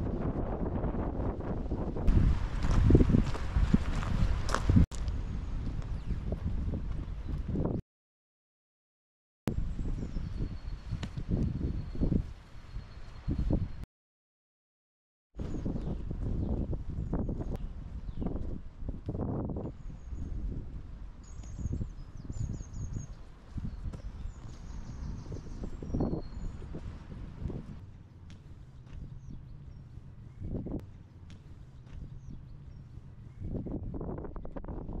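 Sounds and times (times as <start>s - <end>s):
wind rumbling on microphone: 0.0s - 7.8s, 9.5s - 13.8s, 15.4s - 35.0s
footsteps on pavement: 2.1s - 7.6s, 23.4s - 25.0s, 26.6s - 29.9s, 30.8s - 32.9s
small birds chirping: 15.4s - 18.5s, 21.2s - 34.1s.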